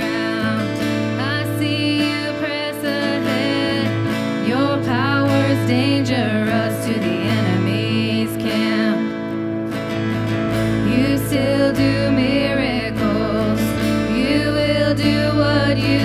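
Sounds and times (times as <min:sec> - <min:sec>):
women singing: 0:00.0 - 0:09.3, 0:10.7 - 0:16.0
electric guitar: 0:00.0 - 0:16.0
keyboard: 0:00.0 - 0:16.0.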